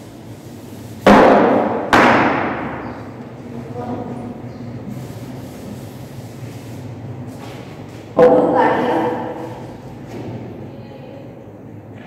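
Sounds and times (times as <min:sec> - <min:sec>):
loud knocks: 0:01.0 - 0:03.0.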